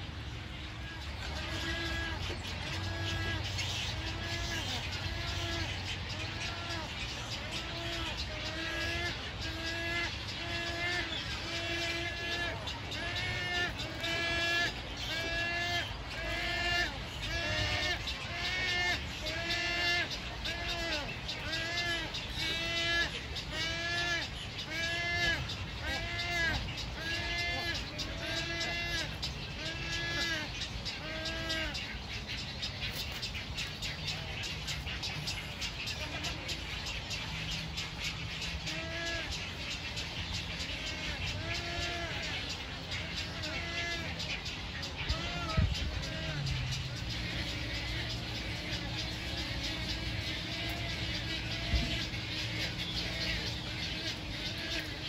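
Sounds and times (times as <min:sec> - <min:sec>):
herons calling: 0:00.0 - 0:55.0.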